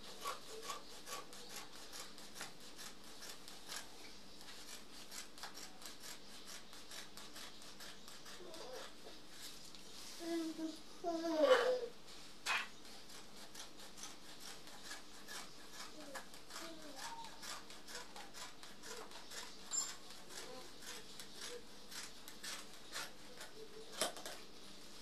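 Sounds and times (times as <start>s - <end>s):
scissors snipping fabric: 0.2s - 9.0s, 12.4s - 24.4s.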